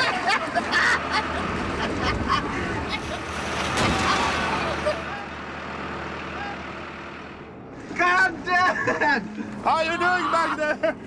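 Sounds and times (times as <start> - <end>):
tractor engine droning: 0.0 - 11.0
water churning: 2.9 - 5.1.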